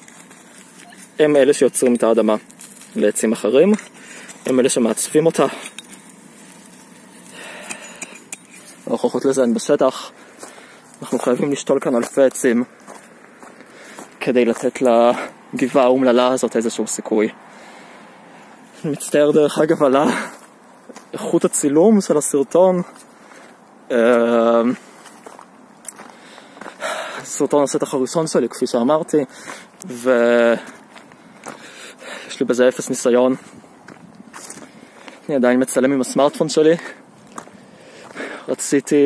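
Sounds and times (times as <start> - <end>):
hand cultivator scratching dry soil: 0.0 - 12.3
footsteps on dirt path: 0.0 - 16.7, 17.5 - 39.0.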